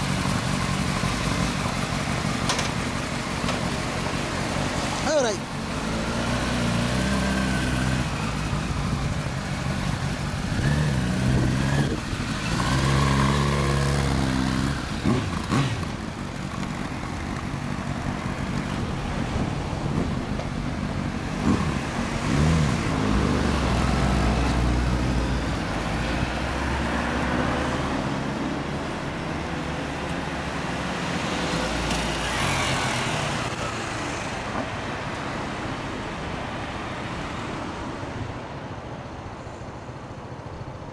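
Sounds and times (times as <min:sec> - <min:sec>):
motorcycle engines revving: 0:00.0 - 0:34.5
road traffic: 0:00.0 - 0:40.9.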